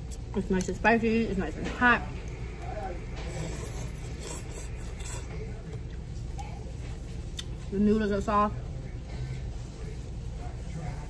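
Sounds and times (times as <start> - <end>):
low room hum: 0.0 - 11.0
slurping and chewing noodles: 2.6 - 6.4.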